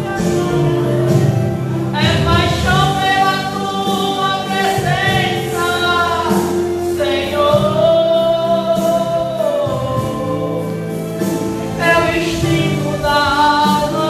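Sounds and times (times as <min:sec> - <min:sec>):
instrumental accompaniment: 0:00.0 - 0:14.0
person singing a hymn: 0:00.0 - 0:14.0.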